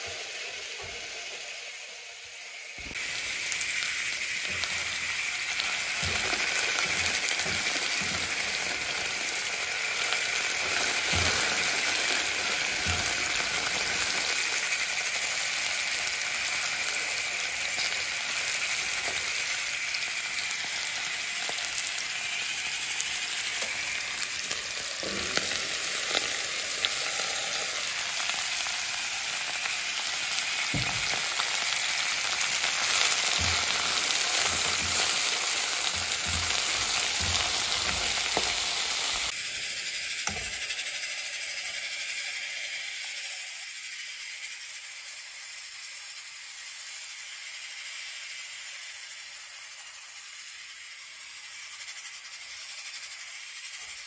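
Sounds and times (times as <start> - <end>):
vegetables sizzling in oil: 0.0 - 54.0
spoon knocking against pan: 32.7 - 39.2.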